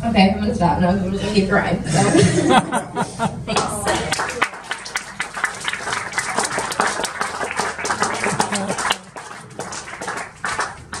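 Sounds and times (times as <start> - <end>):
scattered voices: 0.0 - 11.0
audience applauding: 2.7 - 11.0.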